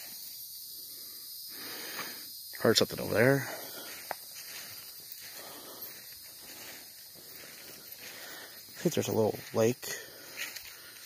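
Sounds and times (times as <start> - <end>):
footsteps rustling through grass: 3.1 - 11.0.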